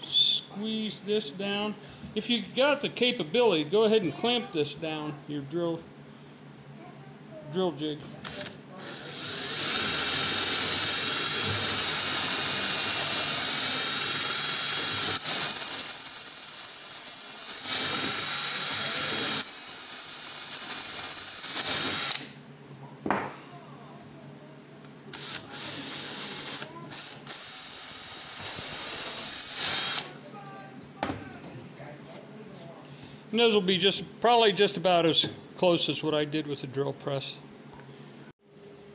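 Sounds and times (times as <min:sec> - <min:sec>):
cordless drill whining: 0:09.3 - 0:22.2, 0:27.0 - 0:30.1.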